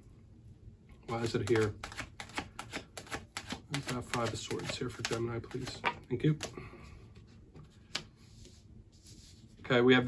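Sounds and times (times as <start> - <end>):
cards shuffled clicking: 1.1 - 6.6.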